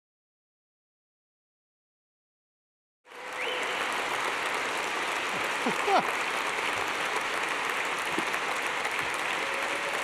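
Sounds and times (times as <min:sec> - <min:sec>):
audience applauding: 0:03.1 - 0:10.0.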